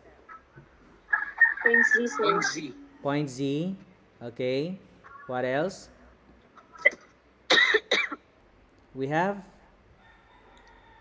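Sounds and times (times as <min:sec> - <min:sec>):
person's voice: 0:01.7 - 0:04.7.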